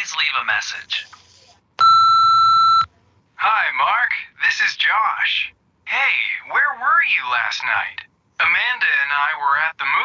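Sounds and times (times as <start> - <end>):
answering machine beep: 1.8 - 2.9.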